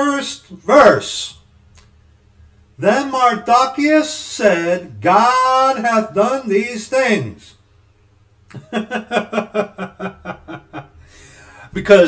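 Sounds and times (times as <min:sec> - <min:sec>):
man chuckling: 0:08.5 - 0:11.2.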